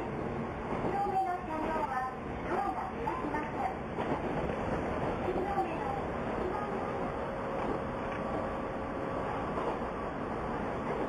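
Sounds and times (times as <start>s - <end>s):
train wheels rumbling: 0.0s - 11.0s
recorded onboard announcement: 0.7s - 4.0s, 5.2s - 7.7s.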